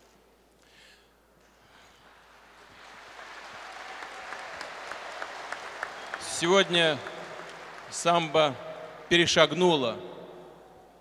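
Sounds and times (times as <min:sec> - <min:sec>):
audience applause: 0:02.0 - 0:09.6.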